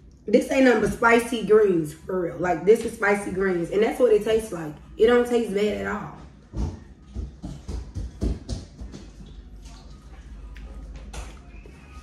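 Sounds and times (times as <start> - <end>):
wet chewing sounds: 9.0 - 11.9.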